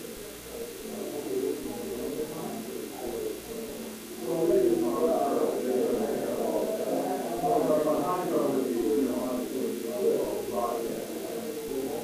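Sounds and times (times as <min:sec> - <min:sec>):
muffled voices talking: 0:00.0 - 0:12.0.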